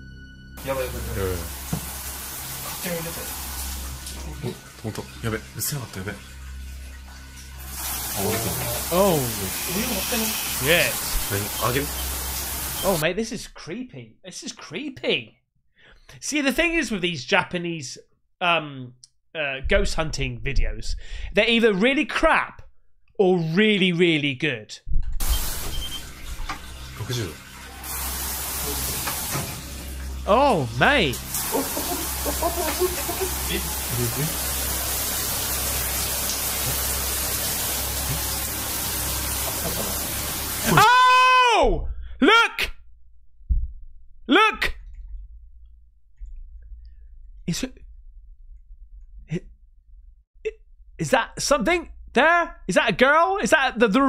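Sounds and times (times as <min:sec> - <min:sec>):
steady hiss: 0:07.7 - 0:13.0, 0:31.2 - 0:40.5
low hum: 0:44.8 - 0:52.7.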